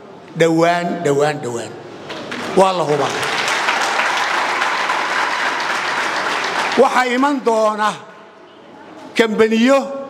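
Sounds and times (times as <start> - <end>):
man speaking: 0.4 - 1.9, 2.6 - 3.3, 6.8 - 8.2, 9.2 - 10.0
audience applauding: 2.2 - 7.5.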